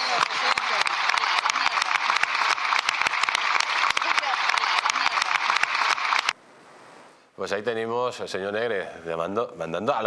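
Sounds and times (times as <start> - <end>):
crowd applauding: 0.0 - 6.4
faint hiss: 6.4 - 9.7.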